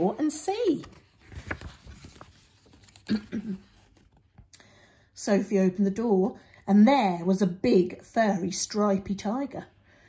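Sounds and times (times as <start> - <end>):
paper page turning: 0.0 - 4.5.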